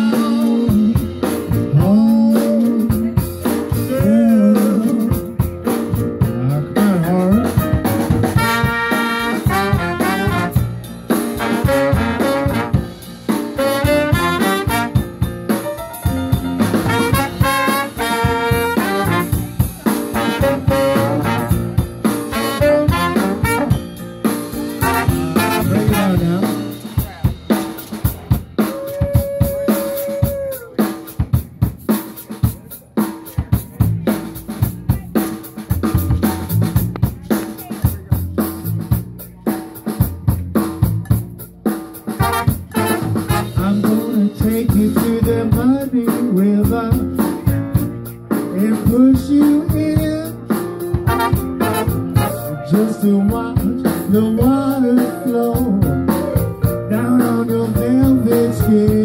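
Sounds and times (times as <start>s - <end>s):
live band with horns: 0.0s - 59.0s.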